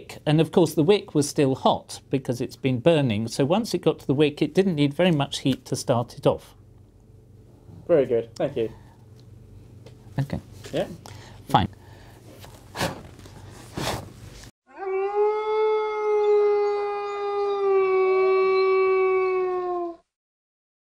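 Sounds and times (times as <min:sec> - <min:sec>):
long howl: 0:14.7 - 0:20.2.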